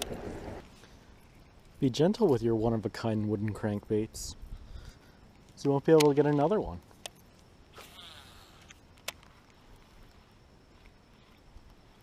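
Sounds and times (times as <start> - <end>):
fishing reel whirring: 7.8 - 8.8.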